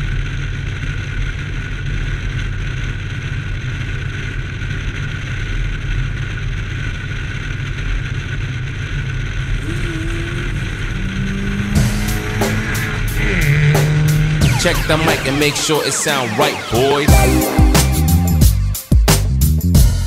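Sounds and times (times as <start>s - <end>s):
car road and wind noise: 10.5s - 15.6s.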